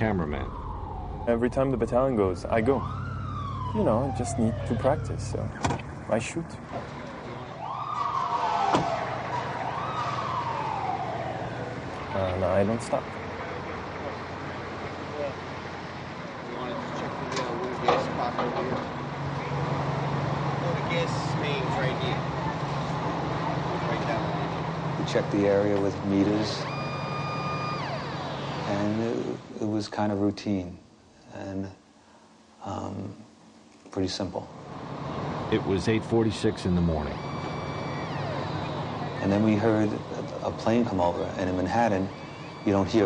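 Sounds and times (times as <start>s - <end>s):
vehicle engine idling: 0.0s - 7.6s
faint high whining tones: 0.0s - 19.6s, 23.4s - 43.0s
city street noise: 0.0s - 29.8s, 33.4s - 43.0s.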